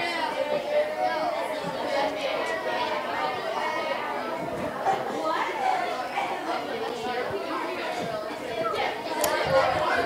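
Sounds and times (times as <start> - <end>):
many students talking at once: 0.0 - 10.0.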